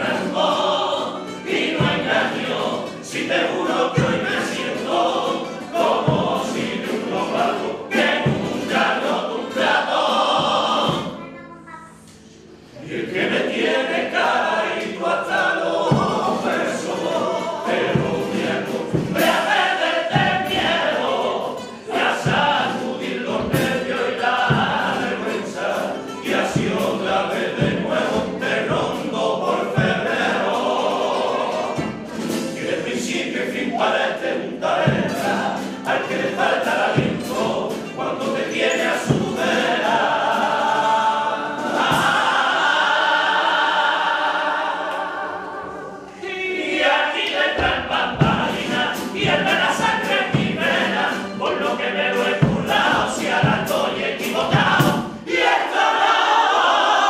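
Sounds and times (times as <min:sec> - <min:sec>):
male choir singing: 0:00.0 - 0:11.2, 0:12.6 - 0:57.0
guitar accompaniment: 0:00.0 - 0:55.4.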